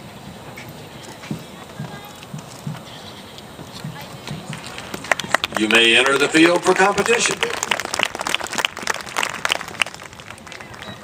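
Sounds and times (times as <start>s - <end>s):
murmur of voices: 0.0s - 8.7s, 9.4s - 11.0s.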